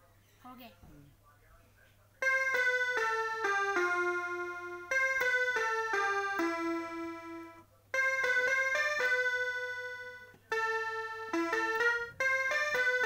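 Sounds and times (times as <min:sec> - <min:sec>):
electronic keyboard notes: 0:02.2 - 0:13.0.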